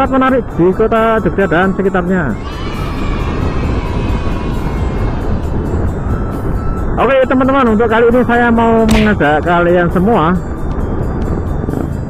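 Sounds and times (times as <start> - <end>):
faint background music: 0.0 - 12.0
wind rushing over microphone: 0.0 - 12.0.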